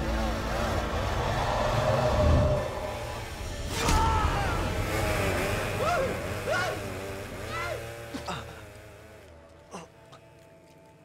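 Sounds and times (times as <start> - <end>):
film score music: 0.0 - 11.0
chainsaw engine running: 4.3 - 9.5.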